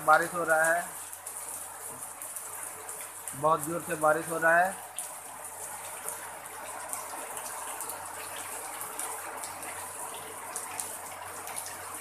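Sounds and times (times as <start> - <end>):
heavy rain on sheet roof: 0.0 - 12.0
water streaming off roof: 0.0 - 12.0.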